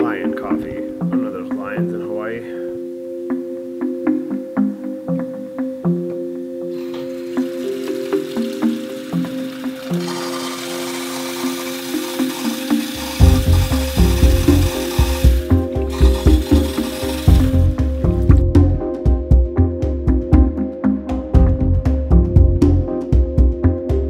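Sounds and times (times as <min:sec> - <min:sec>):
tap water running into saucepan: 0:06.8 - 0:17.9
background music with heavy beat: 0:13.0 - 0:24.0.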